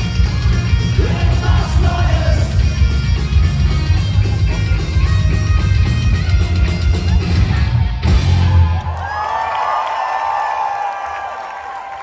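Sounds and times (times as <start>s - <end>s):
bass and drums: 0.0s - 9.0s
crowd cheering: 7.1s - 12.0s.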